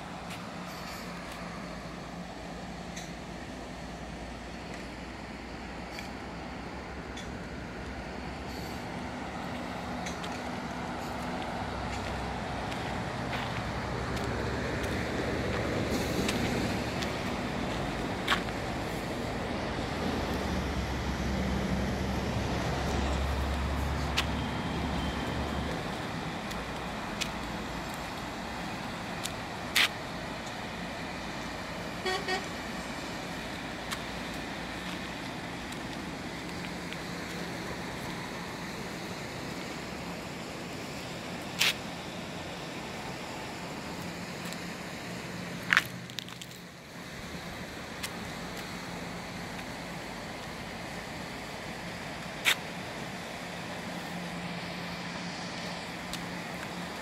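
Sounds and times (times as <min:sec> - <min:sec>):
distant road traffic: 0:00.0 - 0:57.0
outdoor rushing noise: 0:08.2 - 0:31.8.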